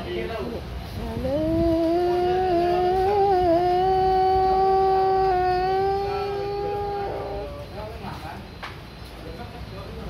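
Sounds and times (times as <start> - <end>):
man chanting call to prayer: 0.9 - 7.8.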